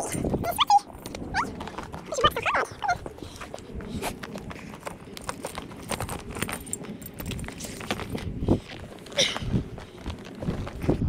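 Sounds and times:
footsteps: 0.2 - 11.0
saddle rustling: 1.5 - 11.0
buckles and stirrups clicking: 3.2 - 10.7.

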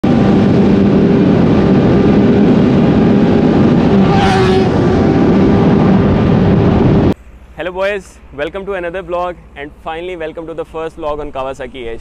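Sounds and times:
motorcycle engine running: 0.0 - 7.2
wind rushing: 0.0 - 7.2.

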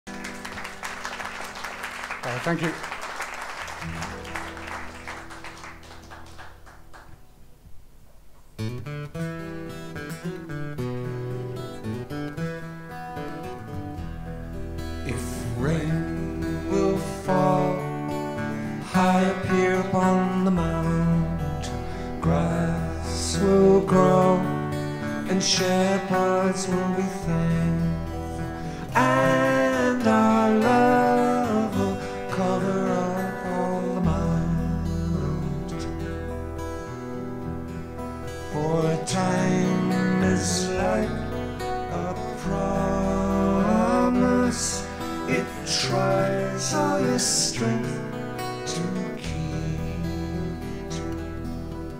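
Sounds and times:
applause: 0.1 - 7.3
acoustic guitars picking: 0.1 - 51.9.

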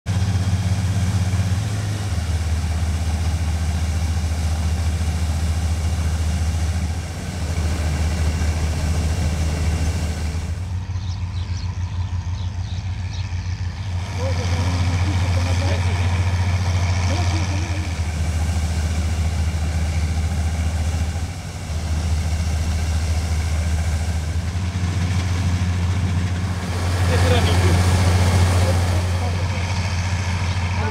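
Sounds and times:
combine harvester engine drone: 0.1 - 30.9.

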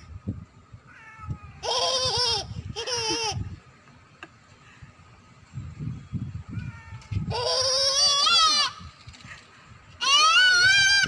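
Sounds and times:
toddler's high-pitched call: 6.6 - 8.9, 10.0 - 11.0.

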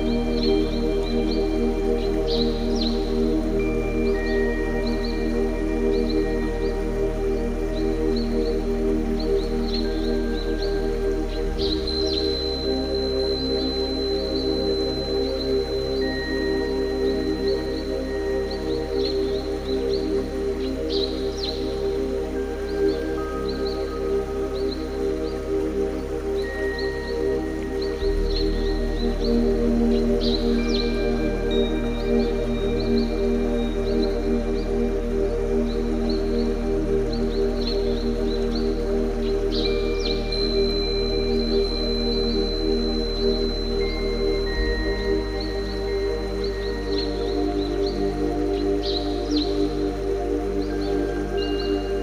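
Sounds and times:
ambient meditation music drone: 0.0 - 52.0.

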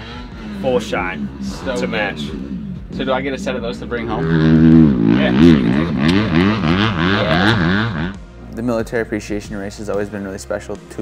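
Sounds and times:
motocross bike engine revving: 0.0 - 8.4.

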